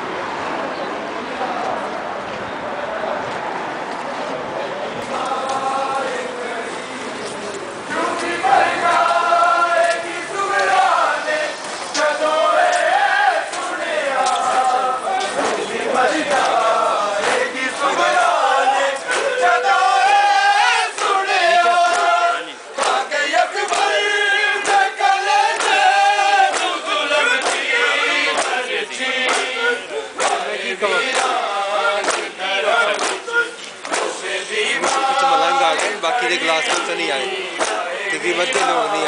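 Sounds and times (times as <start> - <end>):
crowd of men chanting: 4.7 - 39.0
hand slaps on chests: 19.1 - 19.3, 23.7 - 24.0, 24.6 - 24.9, 25.5 - 25.8, 26.5 - 27.7, 28.3 - 28.6, 29.2 - 29.6, 30.2 - 30.5, 31.1 - 31.4, 32.0 - 34.2, 34.8 - 36.0, 36.6 - 37.0, 37.6 - 37.9.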